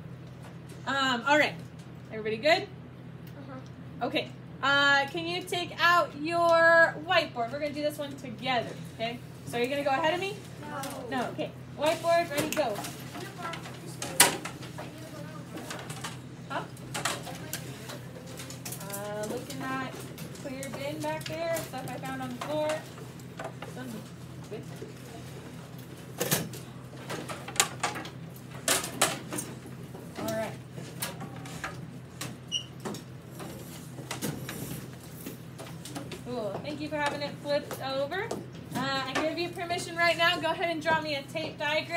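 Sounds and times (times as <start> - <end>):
steady low hum: 0.0 - 41.9
clicks and knocks of whiteboards: 12.3 - 16.2, 26.2 - 39.4
children's low voices: 13.1 - 16.1
marker squeak: 32.5 - 32.7.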